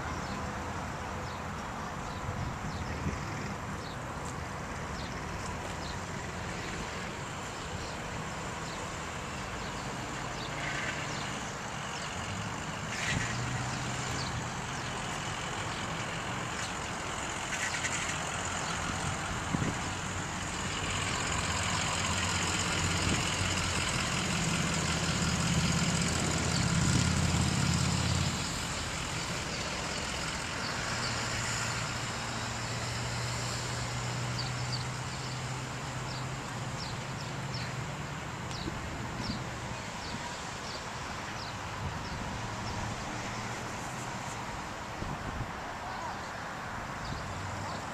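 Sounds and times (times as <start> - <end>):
outdoor background noise: 0.0 - 47.9
vehicle engine humming: 0.0 - 47.9.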